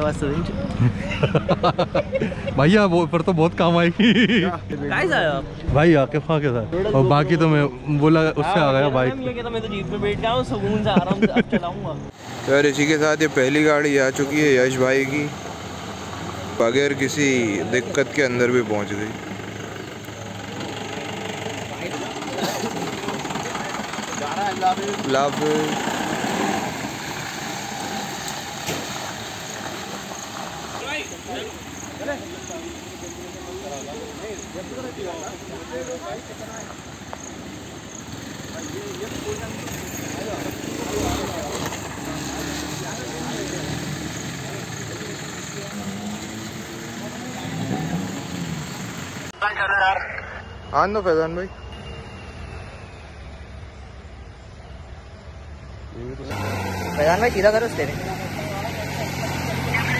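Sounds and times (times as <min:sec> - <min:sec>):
indistinct voices: 0:12.0 - 0:28.4
motorcycle engine running: 0:18.6 - 0:26.2.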